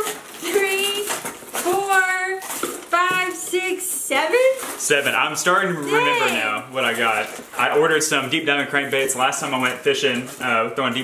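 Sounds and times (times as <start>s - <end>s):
plastic packages rattling: 0.0s - 11.0s
woman's high excited voice: 5.8s - 6.4s.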